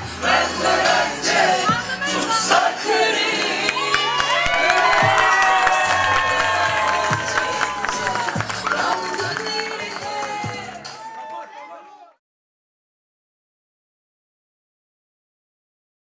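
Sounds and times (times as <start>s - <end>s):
crowd cheering: 2.9s - 12.2s
crowd clapping: 3.2s - 12.2s
music with bass and melody: 3.5s - 11.0s.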